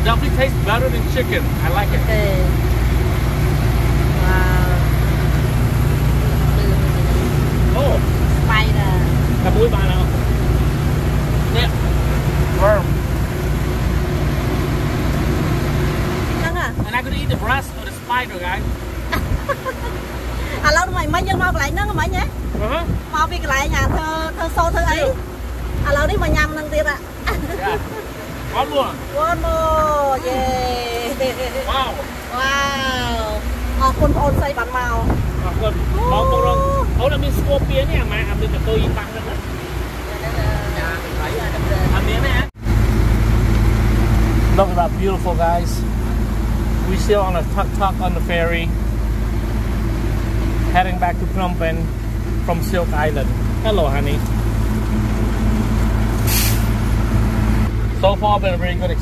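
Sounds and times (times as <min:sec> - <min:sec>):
ferry engine drone: 0:00.0 - 0:59.0
low rumble: 0:00.0 - 0:59.0
short hiss: 0:56.2 - 0:56.8.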